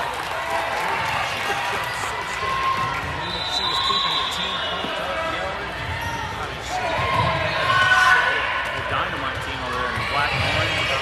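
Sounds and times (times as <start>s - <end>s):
indistinct voices in gym: 0.1s - 11.0s.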